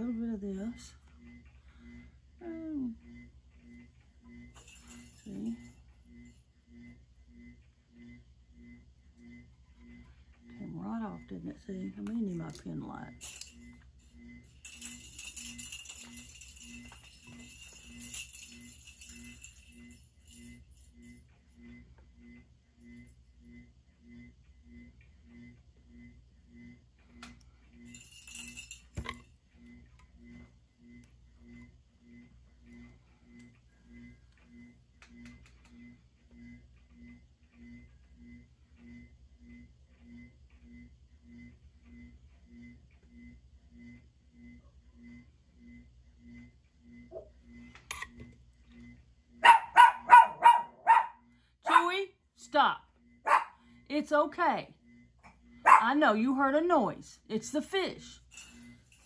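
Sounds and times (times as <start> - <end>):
small motor pulsing hum: 0.0 - 59.0
dog barking loudly: 49.4 - 51.9, 53.3 - 53.6, 55.7 - 55.9.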